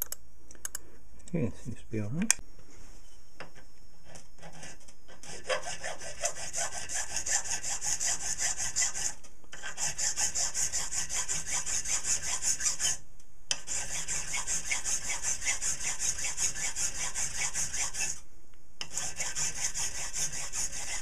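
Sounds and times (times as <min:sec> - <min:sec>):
hand file rasping on brass: 0:04.1 - 0:18.2, 0:18.8 - 0:21.0.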